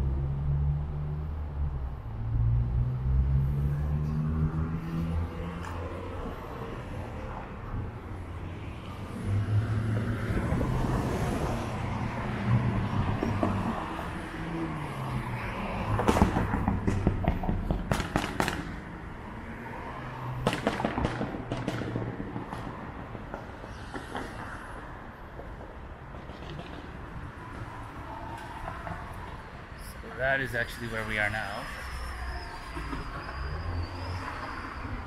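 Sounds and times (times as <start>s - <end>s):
car engines passing: 0.0s - 35.0s.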